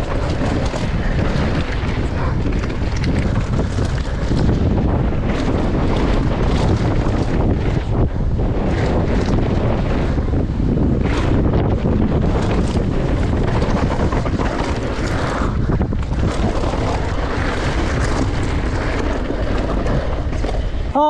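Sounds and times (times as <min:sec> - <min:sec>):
knocks and rattles: 0:00.0 - 0:20.8
bike tyres rumbling on gravel: 0:00.0 - 0:21.0
wind buffeting microphone: 0:00.0 - 0:21.0.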